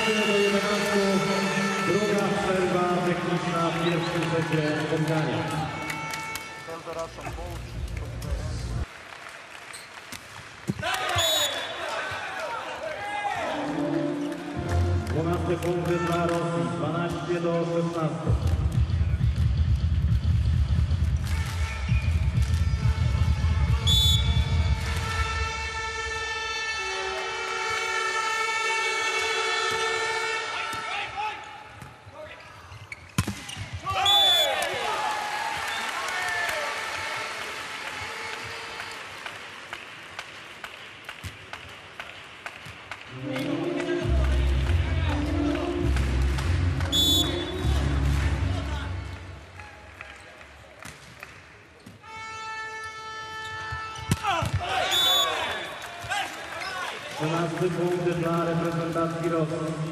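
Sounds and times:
arena crowd noise: 0.0s - 19.7s, 21.3s - 33.0s, 33.6s - 59.9s
referee whistle blasts: 11.0s - 11.9s, 23.8s - 24.6s, 33.9s - 34.7s, 46.9s - 47.7s, 54.8s - 55.7s
public-address music: 13.4s - 15.9s, 43.1s - 49.5s.

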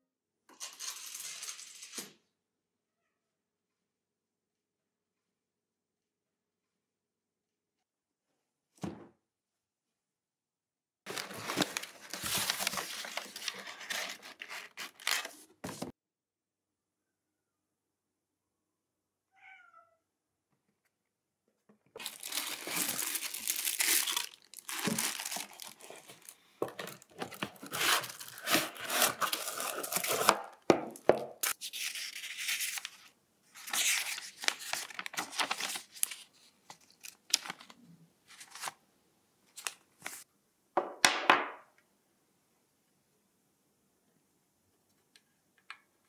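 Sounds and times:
paper and packaging rustling: 11.1s - 15.9s, 22.0s - 38.8s, 39.5s - 40.3s
cat meowing softly: 19.3s - 20.2s.

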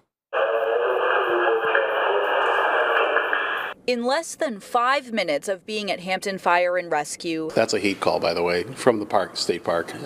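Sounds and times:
hissy dispatch radio voice: 0.4s - 3.8s.

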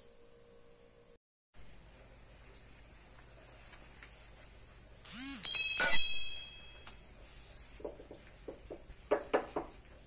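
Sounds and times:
bell-like ding: 5.4s - 7.0s.

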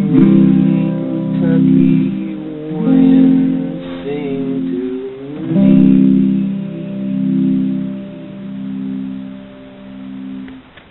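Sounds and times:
electric guitar chord ringing: 0.0s - 10.9s.

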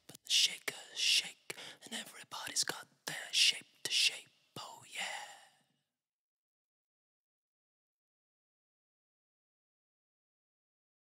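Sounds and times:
man whispering: 0.0s - 5.7s.

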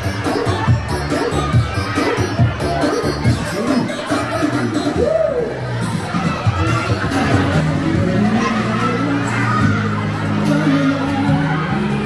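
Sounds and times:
background music: 0.0s - 12.0s
children chattering and shouting: 0.0s - 12.0s.

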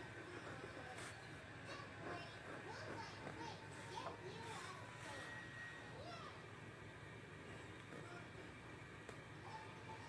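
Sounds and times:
faint children's voices: 0.0s - 6.7s
steady low hum: 0.0s - 10.0s.

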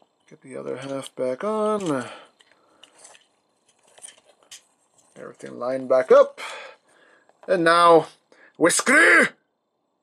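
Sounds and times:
plastic parts clicking and rattling: 0.2s - 5.3s.

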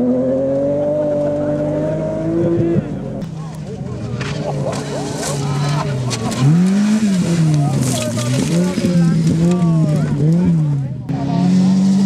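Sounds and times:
rally car engine revving: 0.0s - 12.0s
gravel hissing and crackling: 3.4s - 9.8s.

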